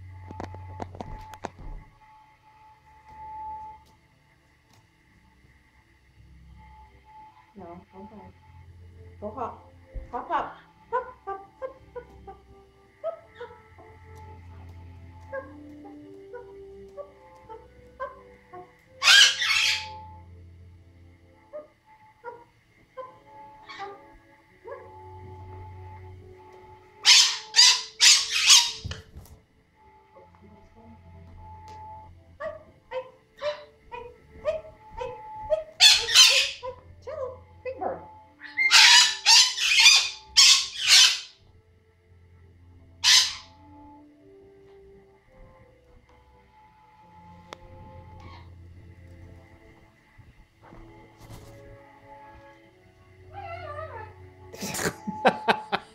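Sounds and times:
simple melody music: 0.0s - 55.9s
harsh animal calls: 15.3s - 20.2s, 21.5s - 26.0s, 27.0s - 29.0s, 32.5s - 36.8s, 38.4s - 41.4s, 43.0s - 43.6s
faint steady high tone: 29.7s - 38.5s.

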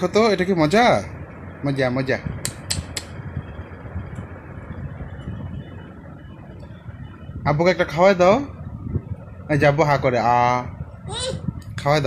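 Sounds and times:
fan-like room noise: 0.0s - 12.0s
sharp clicks: 2.4s - 3.2s.

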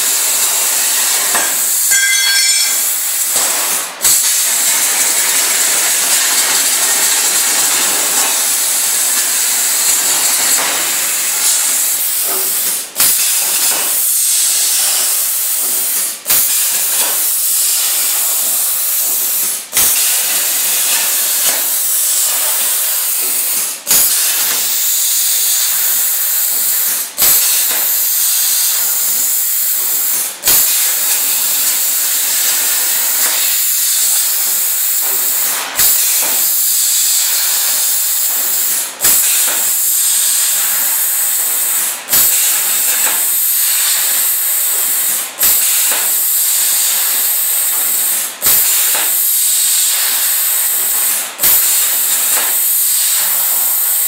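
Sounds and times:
plasma torch hissing: 0.0s - 54.0s.

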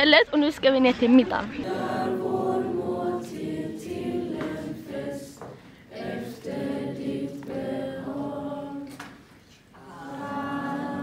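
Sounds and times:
group singing unaccompanied: 1.6s - 11.0s.

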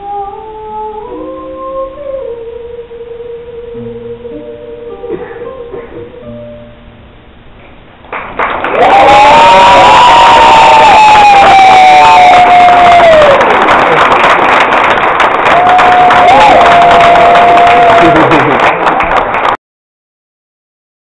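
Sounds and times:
audience cheering and applauding: 8.1s - 19.6s
long whoops: 8.7s - 13.6s, 15.4s - 18.6s.

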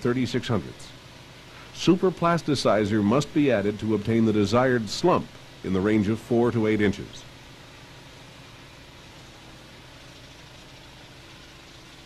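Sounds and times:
construction machinery engine drone: 0.0s - 12.0s
hiss: 7.6s - 12.0s.

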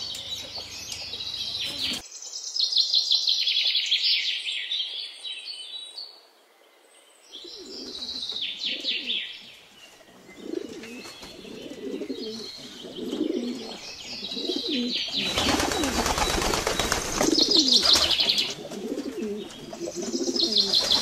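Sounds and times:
pigeons cooing: 7.4s - 9.3s, 10.0s - 21.0s.

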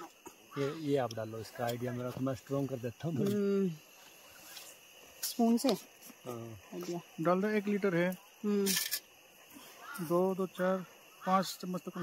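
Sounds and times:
people speaking: 0.6s - 3.8s.

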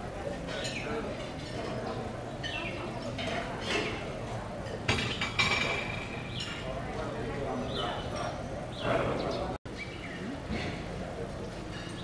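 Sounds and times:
tableware clinking: 2.4s - 7.0s, 11.7s - 12.0s.

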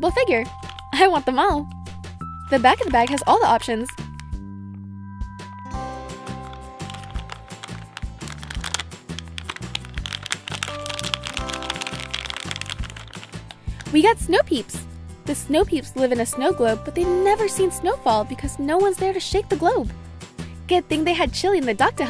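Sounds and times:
light background music: 0.0s - 22.0s
foil bag crinkling: 2.5s - 3.3s, 6.2s - 14.0s.

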